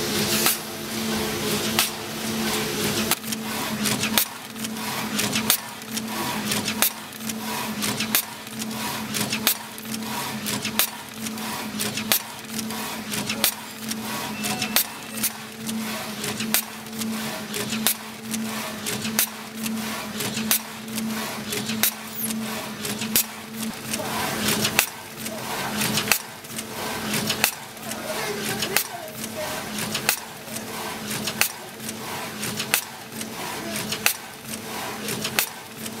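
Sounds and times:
packing machine humming: 0:00.0 - 0:36.0
machine clicks and knocks: 0:00.3 - 0:36.0.

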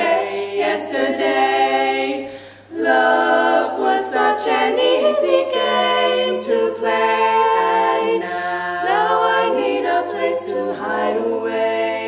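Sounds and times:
women singing a cappella harmony: 0:00.0 - 0:12.0
singer breath: 0:02.2 - 0:02.7, 0:08.2 - 0:08.7.

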